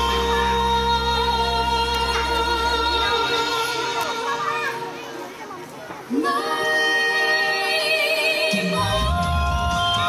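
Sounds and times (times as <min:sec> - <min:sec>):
children chattering and calling: 0:00.0 - 0:09.0.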